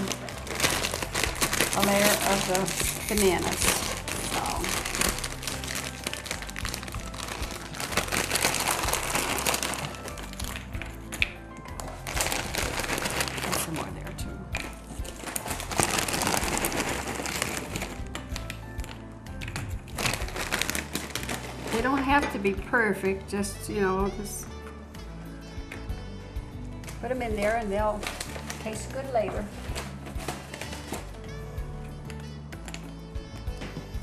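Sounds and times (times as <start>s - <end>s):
foil bag crinkling: 0.0s - 10.9s, 11.6s - 19.0s, 19.9s - 22.2s, 27.6s - 31.2s.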